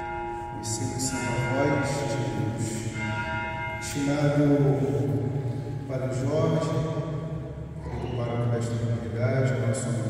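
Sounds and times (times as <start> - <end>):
church bells ringing: 0.0 - 10.0.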